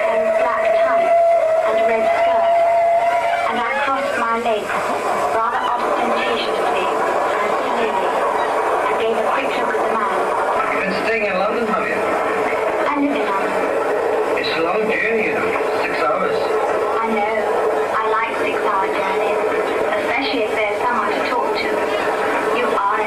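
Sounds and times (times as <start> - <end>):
train sound effects: 0.0 - 23.0
voices: 0.0 - 23.0.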